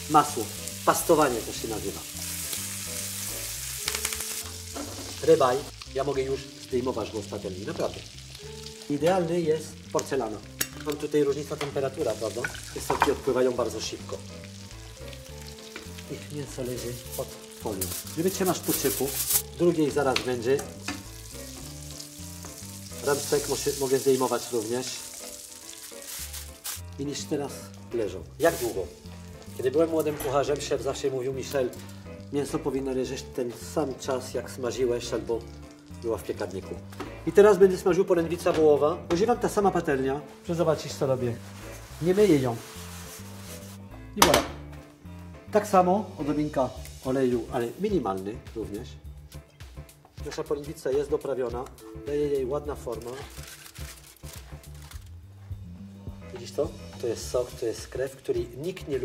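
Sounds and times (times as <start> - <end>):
steak sizzling in a frying pan: 0.0 - 37.3, 40.6 - 43.9, 46.3 - 47.8
soft background music: 0.0 - 59.0
foil rustling: 0.1 - 4.7, 14.5 - 27.3, 28.4 - 30.1, 40.8 - 43.9, 52.8 - 55.2.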